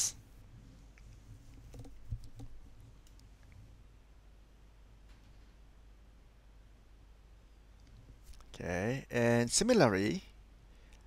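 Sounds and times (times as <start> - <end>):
low steady hum: 0.0 - 11.0
faint taps and clicks: 0.9 - 3.6.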